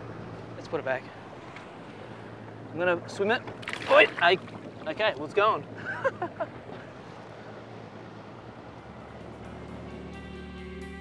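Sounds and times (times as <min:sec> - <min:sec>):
rushing water: 0:00.0 - 0:10.9
wind: 0:00.0 - 0:11.0
background music with held tones: 0:08.9 - 0:11.0.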